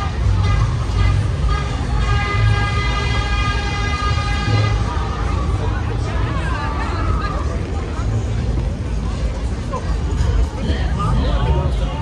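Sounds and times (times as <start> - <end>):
long steady horn tone: 0.0 - 6.9
crowd voices: 0.0 - 12.0
heavy bass ride music: 0.0 - 12.0.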